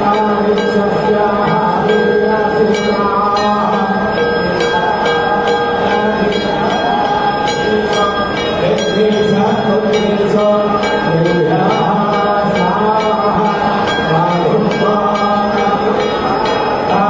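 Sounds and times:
devotional music: 0.0 - 17.0
temple bells ringing: 0.0 - 17.0.

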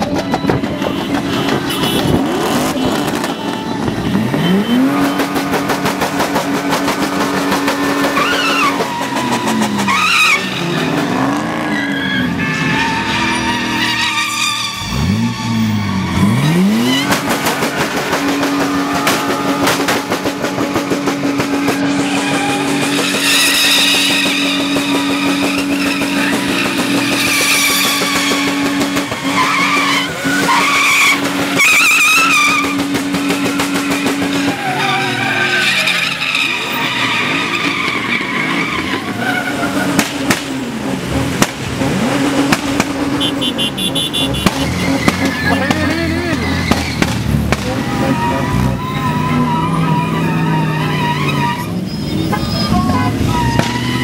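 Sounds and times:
truck engines revving: 0.0 - 54.0
tyres squealing: 0.0 - 54.0.

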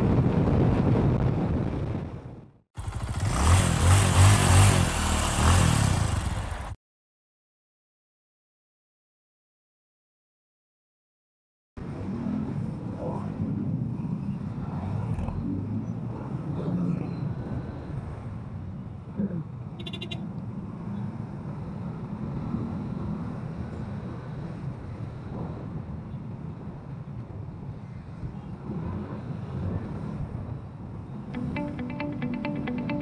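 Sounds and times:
surrounding motorbike and car traffic: 0.0 - 6.8, 11.8 - 33.0
scooter engine rumble: 2.8 - 6.8.

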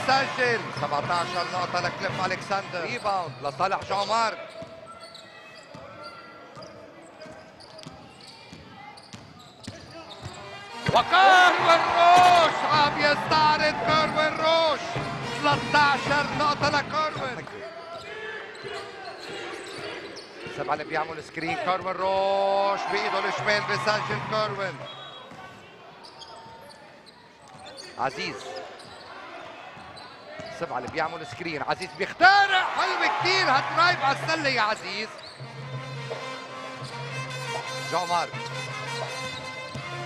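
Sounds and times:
voices in arena: 0.0 - 40.0
shoes squeaking: 4.0 - 10.6, 24.8 - 32.2, 34.7 - 37.2, 37.9 - 40.0.

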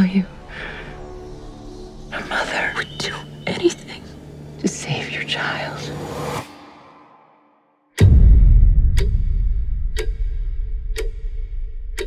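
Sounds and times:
person whispering: 2.1 - 6.0.

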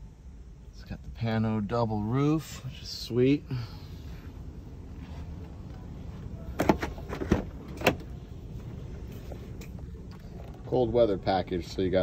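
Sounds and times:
car door latch clicks: 6.6 - 8.2.

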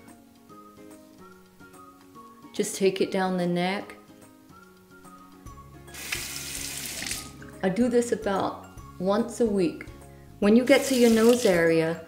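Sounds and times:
tap water running into sink: 6.0 - 7.4, 10.7 - 11.7.

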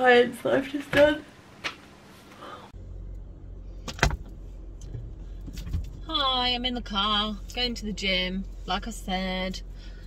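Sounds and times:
car engine idling: 2.7 - 10.0.

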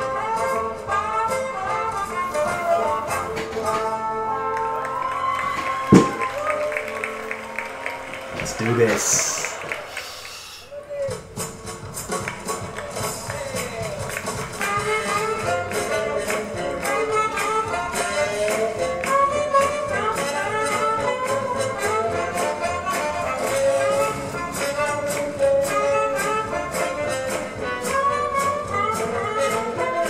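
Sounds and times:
swing jazz band music: 0.0 - 7.4, 11.2 - 30.0
sharp loud thump: 5.9 - 6.3.

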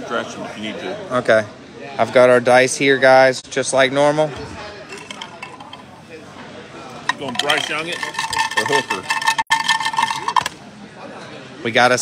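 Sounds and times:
dice rattling in a cup: 4.9 - 5.8, 7.1 - 10.5.

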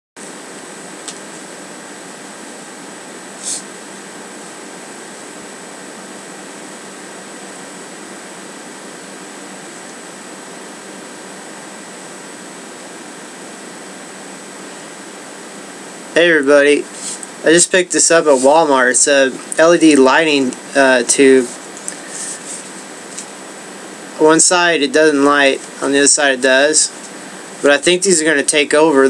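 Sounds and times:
faint high-pitched whine: 0.2 - 29.0
steady room noise hiss: 0.2 - 29.0.

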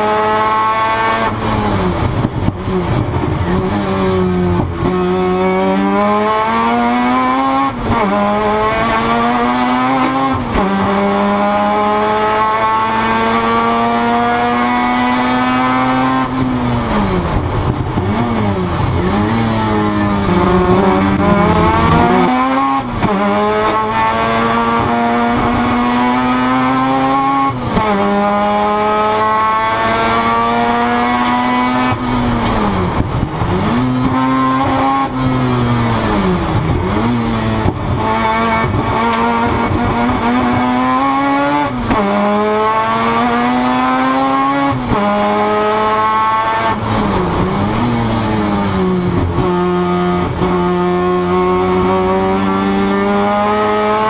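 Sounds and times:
rotary engine revving at racing speed: 0.0 - 54.0.

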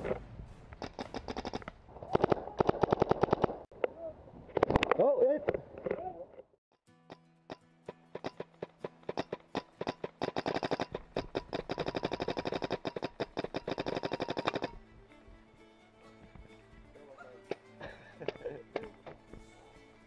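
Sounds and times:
background music: 13.6 - 20.0.

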